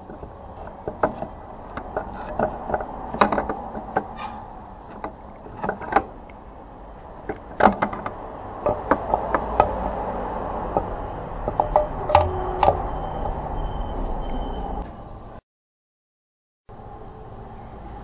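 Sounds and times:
tools clicking and knocking on metal: 0.0s - 12.8s.

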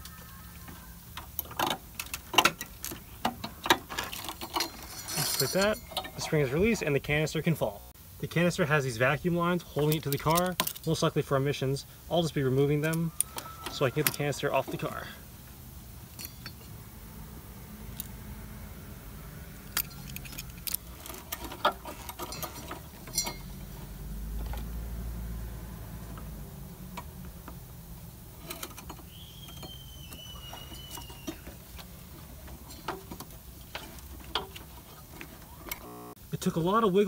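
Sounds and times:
low steady hum: 0.0s - 37.0s
rubber hoses clicking and rattling: 1.1s - 6.3s, 19.7s - 24.8s, 26.9s - 35.8s
thin high squeak: 28.6s - 31.6s.

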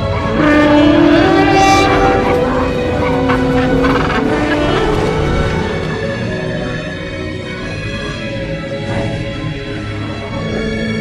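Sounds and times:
film music: 0.0s - 11.0s.

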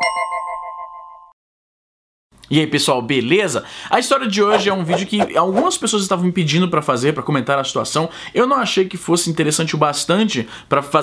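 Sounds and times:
synthesized bell-like chime chord: 0.0s - 1.4s.

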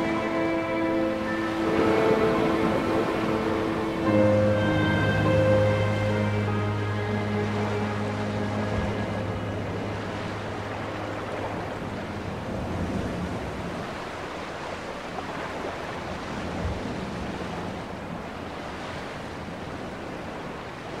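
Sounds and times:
low hum: 0.0s - 13.8s
steady rushing noise: 0.0s - 14.8s.

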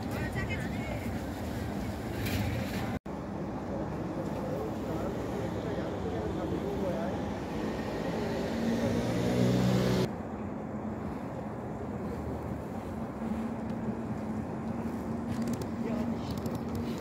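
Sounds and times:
traffic background: 0.0s - 17.0s
motor vehicle engine drone: 4.7s - 12.7s.

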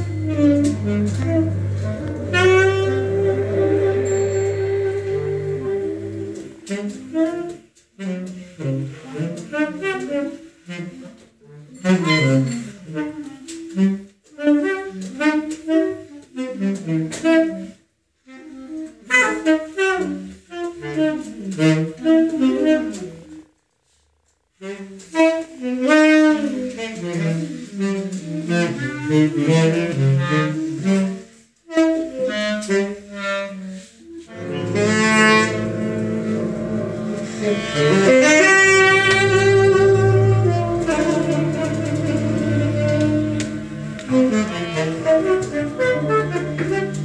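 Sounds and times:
clarinet: 0.0s - 47.0s
saxophone: 0.0s - 47.0s.

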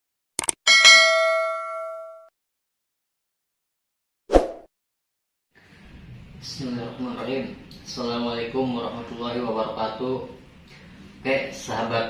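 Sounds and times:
notification bell chime: 0.7s - 2.3s.

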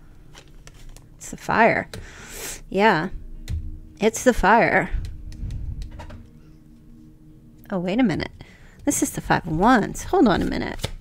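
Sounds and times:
faint steady hum: 0.0s - 11.0s
cards thudding: 10.4s - 11.0s.

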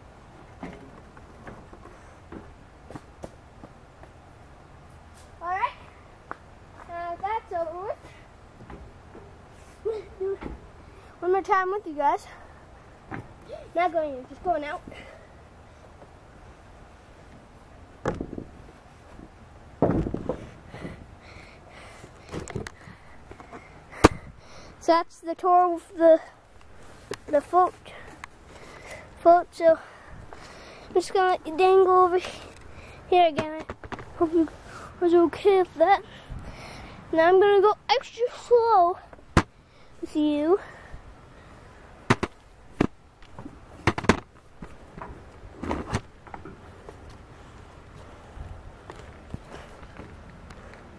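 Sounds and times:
thumps on wooden rail: 18.0s - 18.5s, 19.8s - 20.5s, 42.1s - 46.6s
sharp knocks and bumps: 18.0s - 18.6s, 19.8s - 20.5s, 33.3s - 34.2s, 42.1s - 46.6s.

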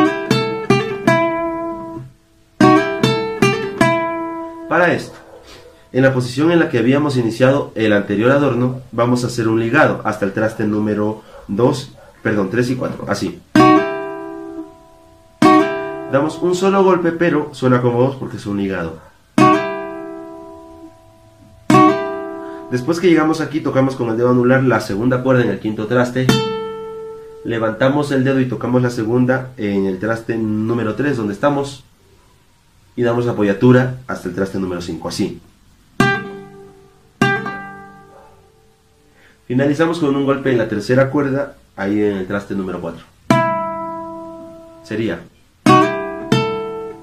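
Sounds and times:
guitar pluck ringing: 0.0s - 5.2s, 12.9s - 17.2s, 19.4s - 23.9s, 25.8s - 27.5s, 36.0s - 38.6s, 43.3s - 44.9s, 45.6s - 47.0s.

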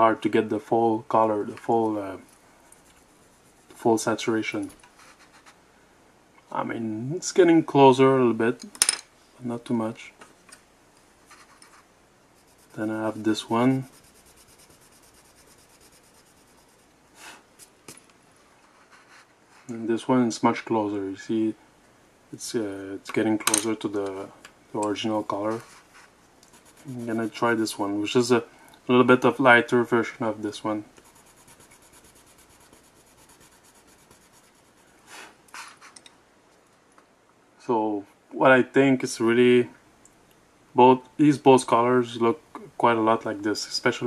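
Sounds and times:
colored pencil scratching on paper: 2.8s - 3.9s, 4.9s - 5.6s, 11.3s - 17.0s, 18.6s - 19.7s, 25.5s - 27.8s, 30.9s - 35.0s.

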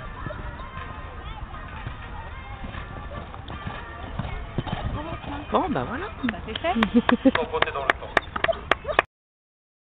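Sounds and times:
distant voices: 0.0s - 9.1s
horse hoofbeats on sand: 0.1s - 8.6s.

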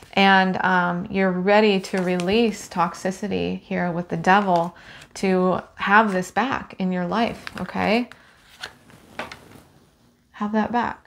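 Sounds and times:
cards sliding and rustling: 7.3s - 9.9s.

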